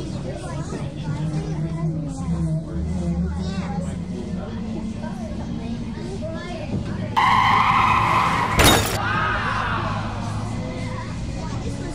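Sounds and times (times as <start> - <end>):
tyre screech: 7.2 - 9.9.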